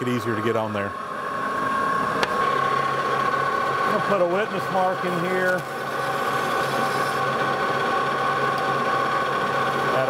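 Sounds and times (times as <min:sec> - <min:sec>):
metal lathe whining: 0:00.0 - 0:10.0.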